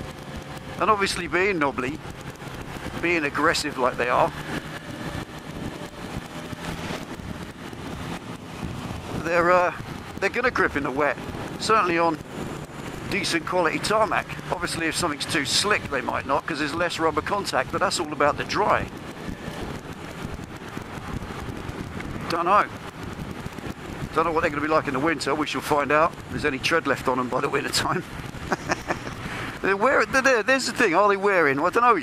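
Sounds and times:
motorcycle engine running: 0:00.0 - 0:29.7
wind buffeting microphone: 0:00.0 - 0:30.2
road noise: 0:00.0 - 0:32.0.

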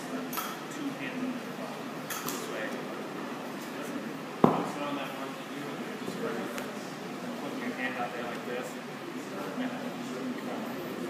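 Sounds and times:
faint voices in a hall: 0:00.0 - 0:11.0.

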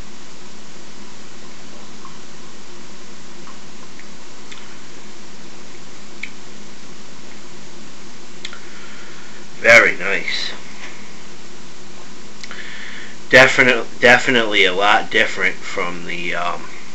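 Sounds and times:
steady hiss: 0:00.0 - 0:16.9.

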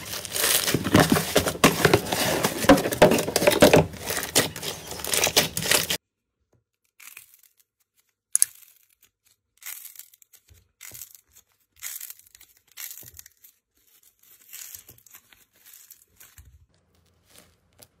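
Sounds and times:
squishy ball skin crackling: 0:06.9 - 0:18.0.

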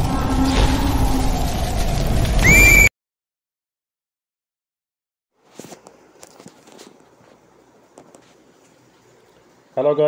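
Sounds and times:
low rumble: 0:00.0 - 0:02.7
shrill warbling bird cry: 0:02.4 - 0:02.9.

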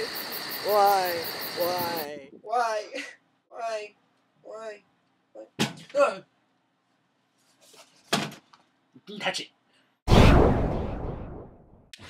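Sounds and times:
loud thump: 0:10.1 - 0:11.6.

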